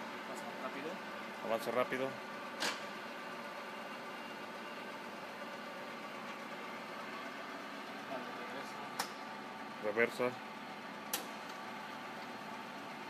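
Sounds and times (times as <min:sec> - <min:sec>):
milling machine table feed hum: 0:00.0 - 0:13.0
sharp click: 0:09.0 - 0:09.2, 0:11.1 - 0:11.3.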